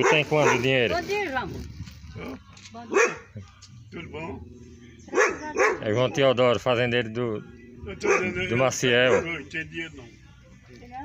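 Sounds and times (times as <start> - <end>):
dog barking: 0.0 - 0.9, 2.9 - 3.4, 5.1 - 6.0, 8.0 - 9.4.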